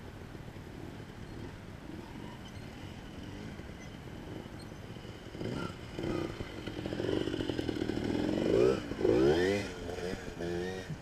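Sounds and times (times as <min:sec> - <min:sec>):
motorcycle engine revving: 0:00.7 - 0:11.0.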